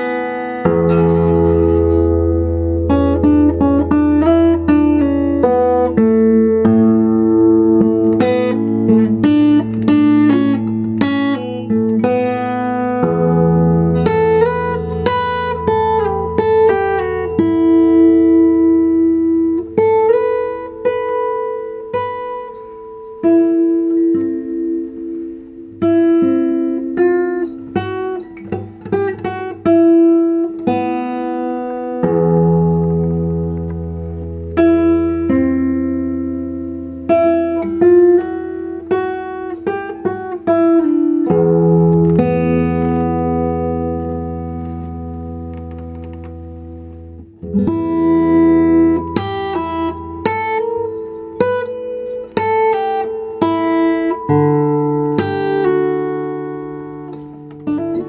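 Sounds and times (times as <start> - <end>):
acoustic guitar picking: 0.0 - 58.0.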